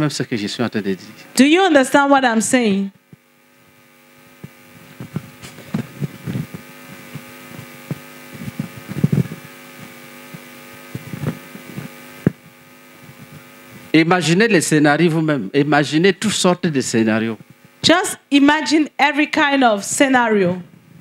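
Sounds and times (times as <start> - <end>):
electrical hum: 0.0 - 21.0
soft low microphone thumps: 3.0 - 14.0.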